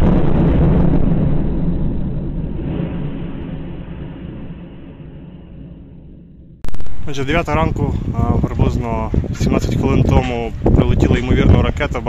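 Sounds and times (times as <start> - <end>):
explosion rumble: 0.0 - 12.0.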